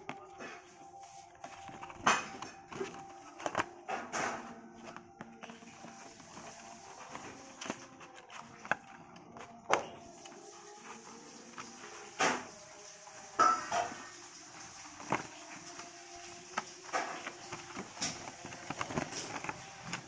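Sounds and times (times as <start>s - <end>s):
faint background music: 0.0s - 20.0s.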